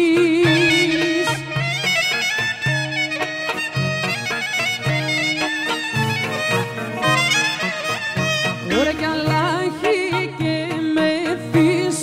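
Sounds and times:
folk clarinet melody: 0.4 - 11.8.

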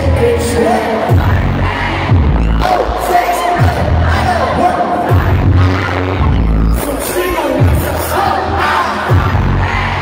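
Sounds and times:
pop music over sound system: 0.0 - 10.0.

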